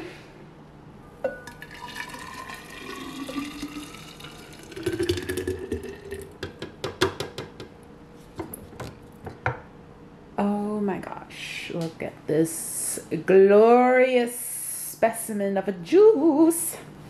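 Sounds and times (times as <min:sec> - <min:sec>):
juice pouring into a carafe: 0:01.4 - 0:06.4.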